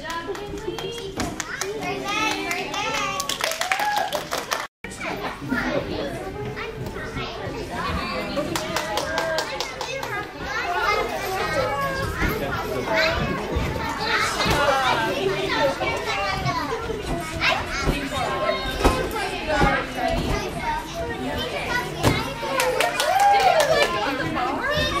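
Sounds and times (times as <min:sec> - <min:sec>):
young children chattering: 0:00.0 - 0:03.3, 0:04.9 - 0:25.0.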